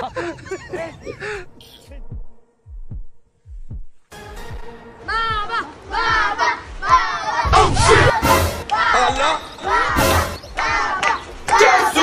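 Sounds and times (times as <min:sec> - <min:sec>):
heartbeat thumps: 0:01.4 - 0:04.7, 0:05.3 - 0:08.7.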